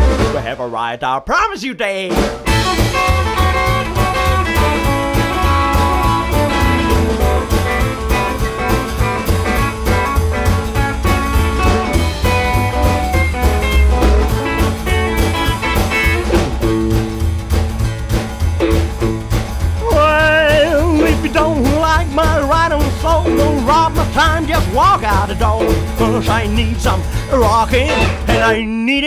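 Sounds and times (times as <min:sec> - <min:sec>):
person singing: 0:00.0 - 0:02.2, 0:19.8 - 0:29.0
rockabilly band playing: 0:00.0 - 0:29.0
electric guitar lead: 0:02.4 - 0:28.6.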